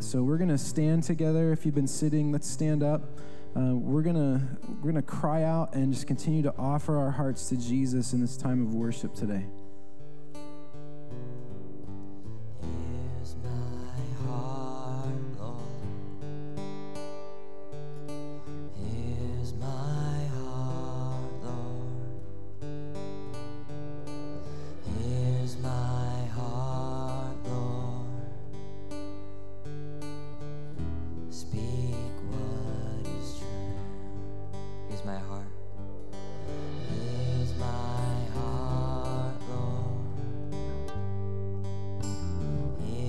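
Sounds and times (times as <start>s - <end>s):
guitar chords: 0.0s - 43.0s
steady bass: 18.7s - 30.0s, 30.8s - 43.0s
steady low bass note: 33.5s - 43.0s.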